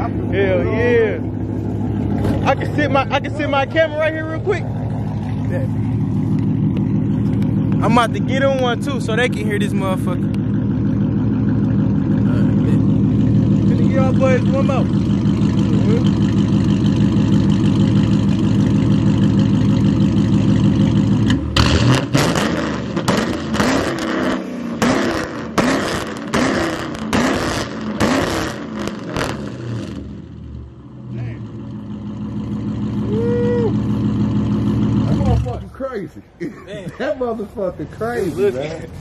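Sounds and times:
car engine idling and revving: 0.0s - 39.0s.

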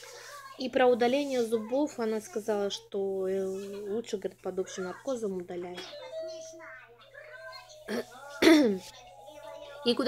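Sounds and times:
woman coughing: 7.9s - 8.8s.

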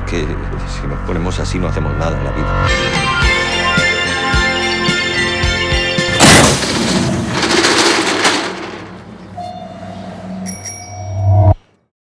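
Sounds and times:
metal roll-up shutter rattling: 6.2s - 9.2s.

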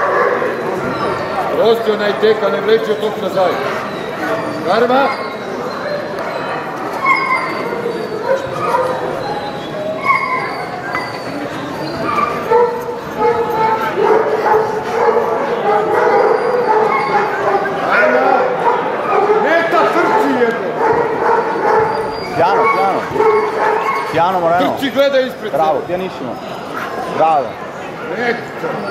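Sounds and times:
dogs barking: 0.0s - 24.9s
people talking: 22.4s - 23.2s.

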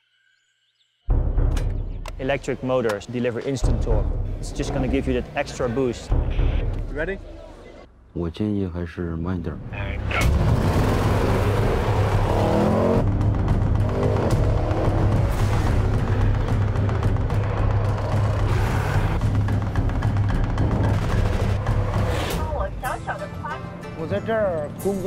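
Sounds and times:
dramatic music: 1.1s - 7.6s, 9.6s - 25.0s
man talking: 6.9s - 10.1s
deep drone: 10.0s - 22.5s
car engine accelerating hard: 10.2s - 22.3s.

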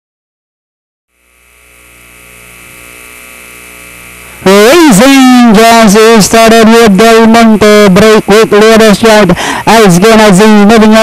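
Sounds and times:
electrical hum and hiss: 1.1s - 11.0s.

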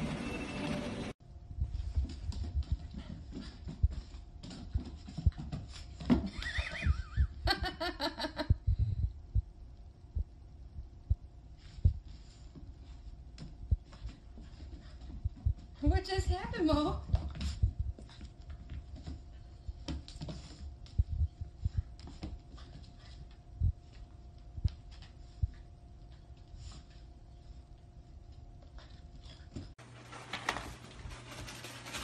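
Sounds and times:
dog paws on hardwood floor: 1.6s - 6.8s, 11.6s - 32.0s.

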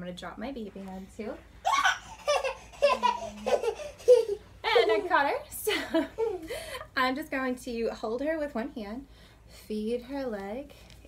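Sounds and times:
toddler laughing and squealing: 1.6s - 4.5s
woman laughing: 2.4s - 6.8s.

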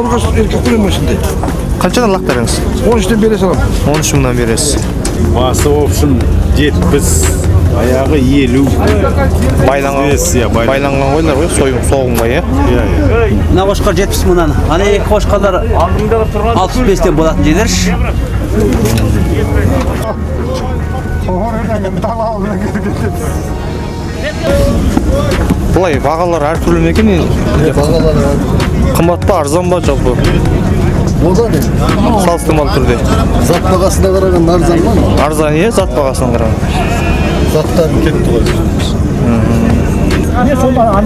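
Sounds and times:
murmur of people talking: 0.0s - 41.0s
steady low rumble: 0.0s - 41.0s.

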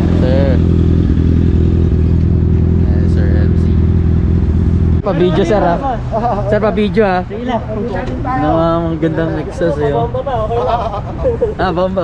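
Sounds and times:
motorcycle engine idling: 0.0s - 7.7s.

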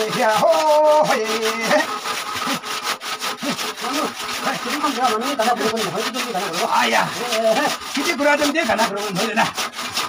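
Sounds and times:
hand saw cutting wood: 0.0s - 10.0s.

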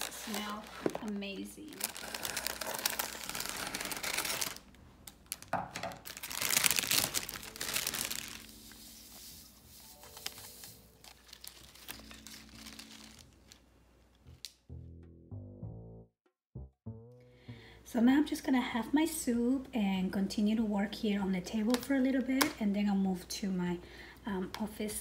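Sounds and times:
plastic wrapping crinkling and tearing: 0.0s - 13.7s.

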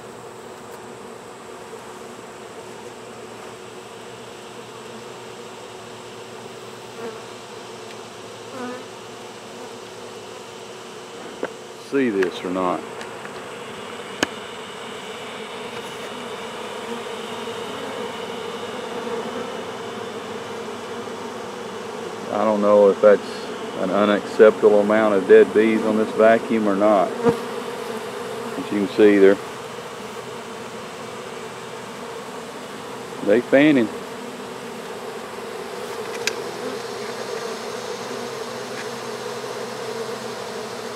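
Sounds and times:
honeybees buzzing: 0.0s - 40.9s.

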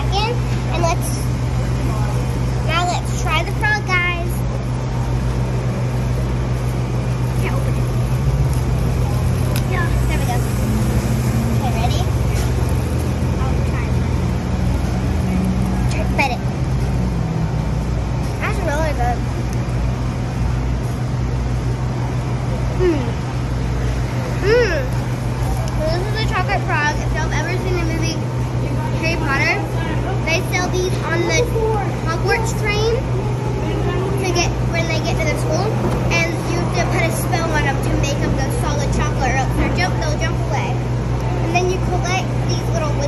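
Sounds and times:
city street traffic rumble: 0.0s - 43.0s
scattered voices: 0.0s - 43.0s.

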